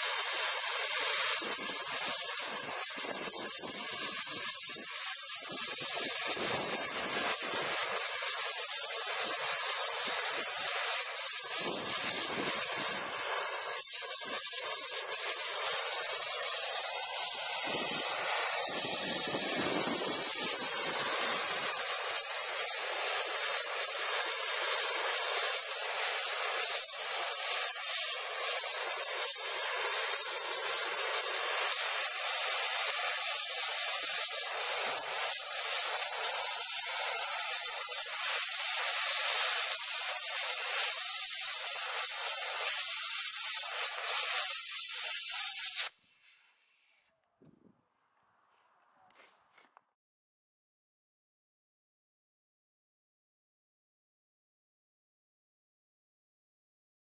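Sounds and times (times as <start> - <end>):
gas torch flame hissing: 0.0 - 46.0.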